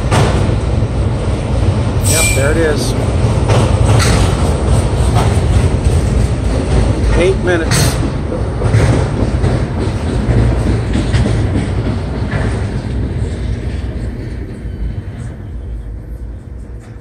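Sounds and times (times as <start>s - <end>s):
freight train cars rumbling past: 0.0s - 17.0s.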